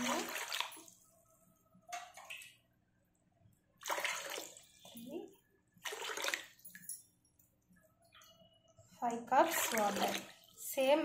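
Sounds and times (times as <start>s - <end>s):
water splashing into saucepan: 0.0s - 1.0s, 3.8s - 4.8s, 5.8s - 6.8s, 9.4s - 10.8s.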